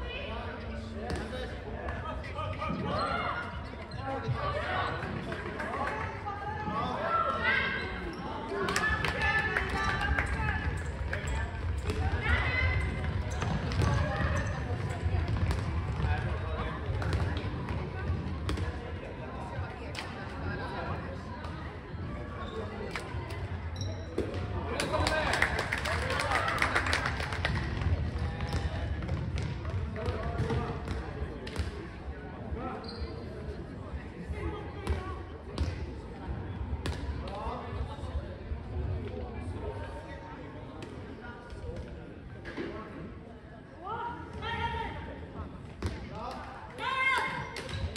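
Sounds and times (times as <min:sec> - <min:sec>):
ball bouncing on hall floor: 0:08.7 - 0:18.8, 0:27.5 - 0:31.8.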